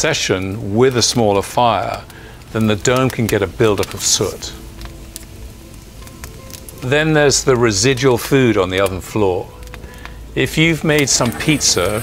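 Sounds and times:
man's voice: 0.0s - 4.6s, 6.8s - 9.5s, 10.4s - 12.0s
soft background music: 0.0s - 12.0s
wood fire crackling and popping: 0.0s - 12.0s.

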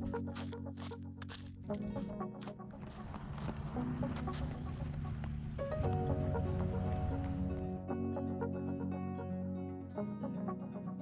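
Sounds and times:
sustained low chords: 0.0s - 11.0s.

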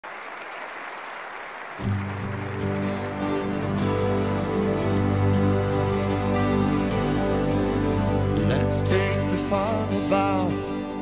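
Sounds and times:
audience applause: 0.0s - 7.9s
orchestra with rock band: 1.9s - 11.0s.

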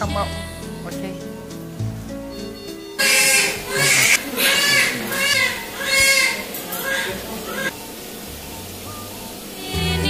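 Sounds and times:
newborn baby crying: 3.0s - 7.7s.

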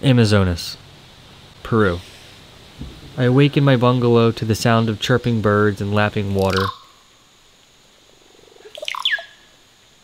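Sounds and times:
bird call: 6.4s - 7.0s, 8.6s - 9.5s.

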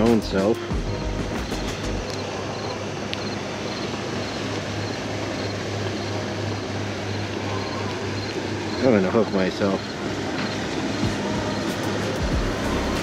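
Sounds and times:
engine droning: 0.0s - 13.0s.

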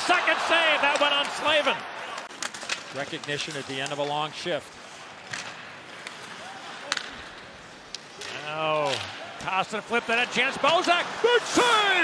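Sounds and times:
hockey stick cracking on puck: 2.1s - 4.2s, 5.2s - 9.2s.

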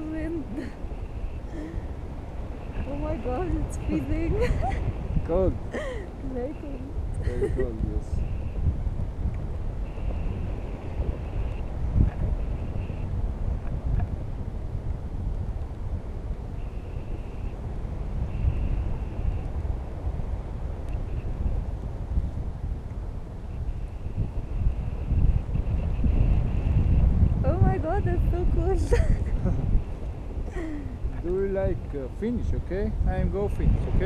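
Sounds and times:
wind buffeting microphone: 0.0s - 34.0s.

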